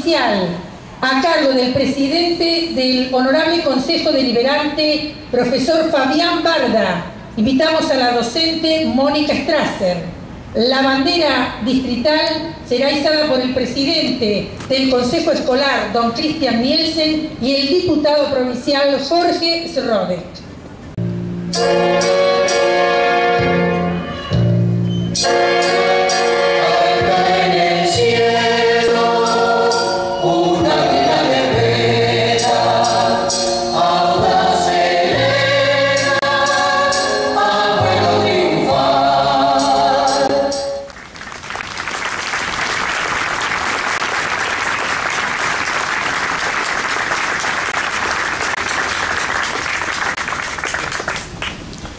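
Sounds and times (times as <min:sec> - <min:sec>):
choral song with instruments: 0:21.5 - 0:40.9
crowd applauding: 0:40.9 - 0:51.7.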